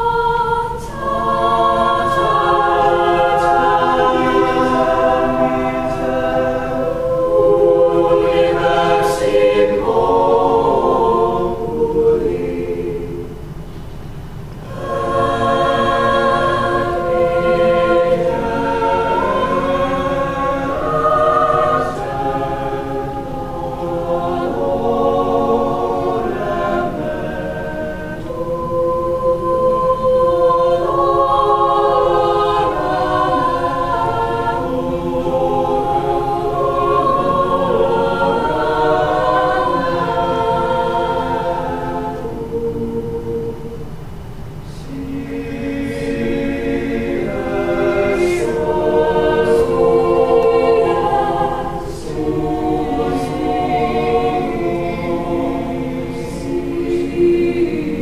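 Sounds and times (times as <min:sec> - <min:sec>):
choir singing a cappella: 0:00.0 - 0:58.0.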